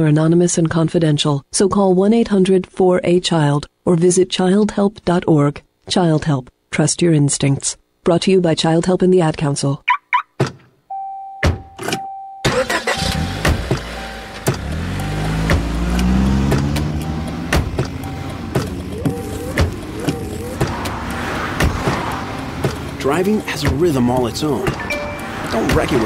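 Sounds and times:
car engine starting and revving: 12.5 - 26.0
sharp clicks: 13.5 - 26.0
chime-like tone: 24.4 - 25.7.

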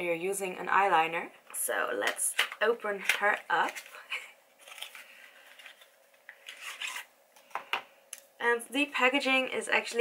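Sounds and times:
packaging rustling: 2.5 - 7.1
cardboard packaging scraping: 4.6 - 7.1.

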